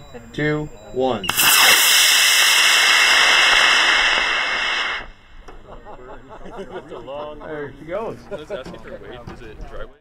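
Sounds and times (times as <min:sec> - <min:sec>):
rocket motor hissing: 0:01.3 - 0:05.5.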